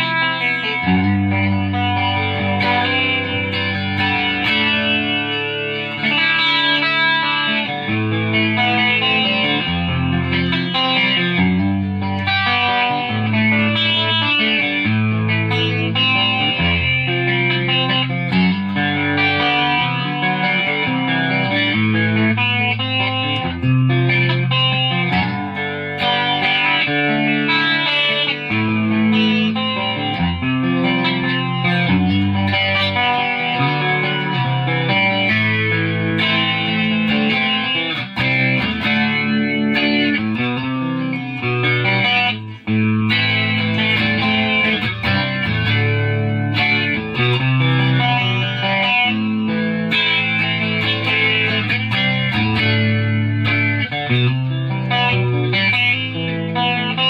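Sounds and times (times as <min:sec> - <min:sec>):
electric guitar playing chords: 0:00.0 - 0:57.0.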